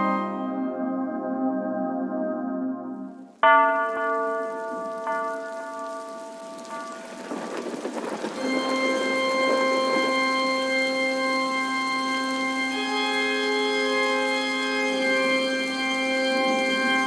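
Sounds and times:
church organ chords: 0:00.0 - 0:06.4, 0:07.3 - 0:17.0
rain-like crackling noise: 0:03.2 - 0:17.0.

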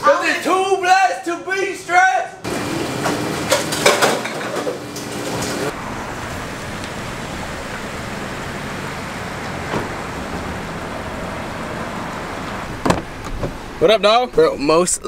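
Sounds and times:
outdoor traffic noise: 0:00.0 - 0:15.0
car door clunk: 0:09.4 - 0:10.6, 0:12.4 - 0:13.7.

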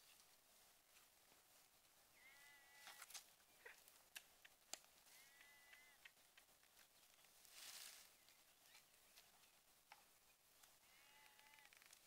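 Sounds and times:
faint drawn-out animal calls: 0:10.8 - 0:12.0.

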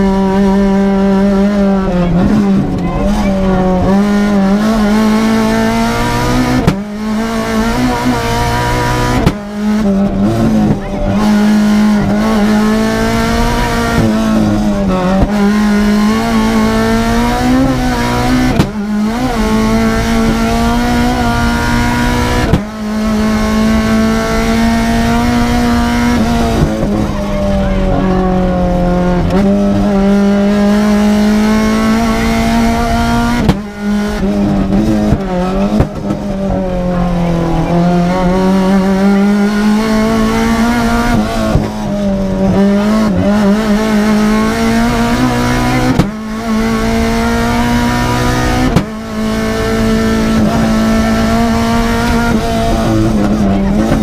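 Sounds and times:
car engine revving hard: 0:00.0 - 0:54.0.

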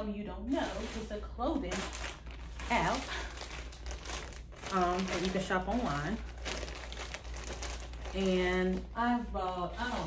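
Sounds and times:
plastic bag crinkling: 0:00.5 - 0:10.0.

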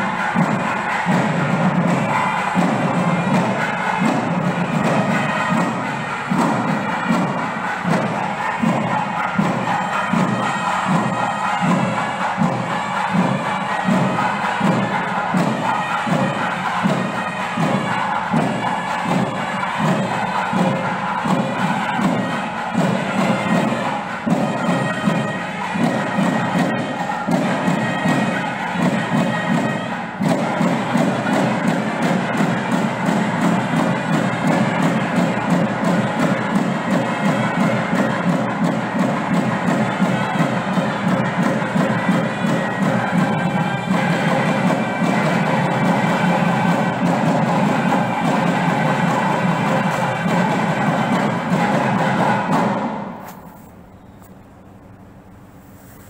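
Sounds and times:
steady drum beat: 0:00.0 - 0:54.1
reedy wind instrument melody: 0:00.0 - 0:54.4.

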